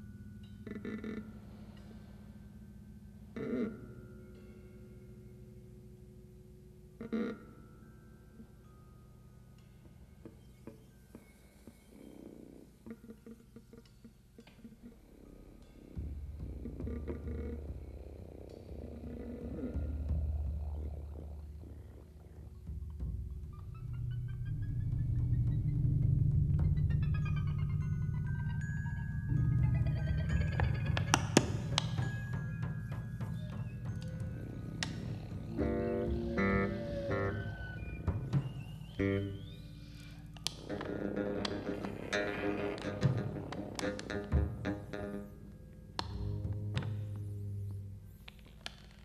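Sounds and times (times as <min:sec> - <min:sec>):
plucked notes: 0:19.7 - 0:45.4.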